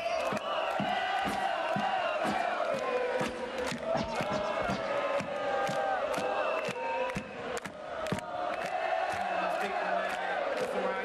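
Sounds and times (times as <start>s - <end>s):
concert crowd cheering and shouting: 0.0s - 11.0s
sharp claps: 0.0s - 11.0s.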